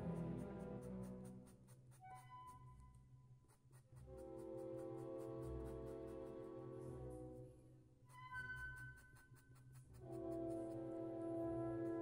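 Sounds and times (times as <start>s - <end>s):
soft string music: 0.0s - 1.4s
chalk scratching on chalkboard: 0.0s - 6.6s, 7.2s - 12.0s.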